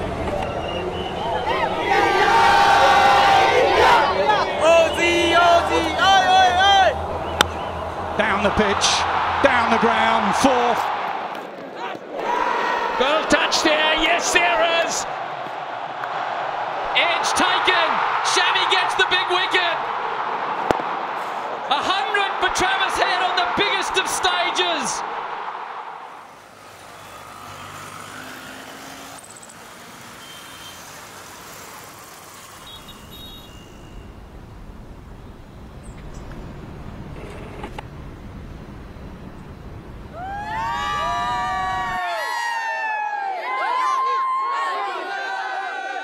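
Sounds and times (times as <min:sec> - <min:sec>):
faint traffic: 0:00.0 - 0:11.7, 0:13.0 - 0:42.5
stadium crowd noise: 0:00.0 - 0:28.1, 0:40.1 - 0:46.0
commentator speaking: 0:13.0 - 0:15.0, 0:16.9 - 0:19.8, 0:21.7 - 0:25.0
bat hitting ball: 0:20.6 - 0:21.0.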